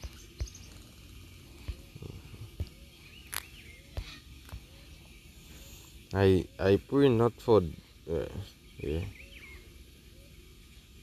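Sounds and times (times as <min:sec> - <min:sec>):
faint bird chirps: 0:00.0 - 0:11.0.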